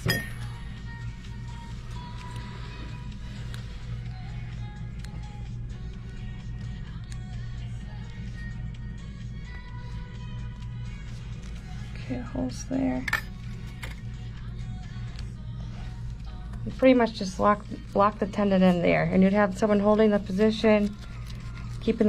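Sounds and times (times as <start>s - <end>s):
faint background music: 0.0s - 22.0s
steady low hum: 0.0s - 22.0s.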